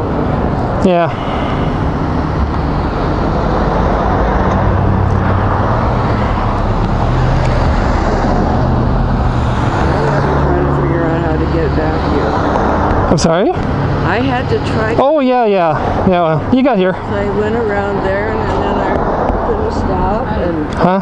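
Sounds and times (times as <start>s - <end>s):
street traffic: 0.0s - 21.0s.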